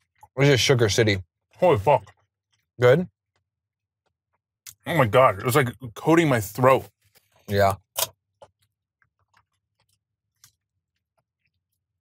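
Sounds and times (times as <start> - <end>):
person chewing: 7.0 - 12.0.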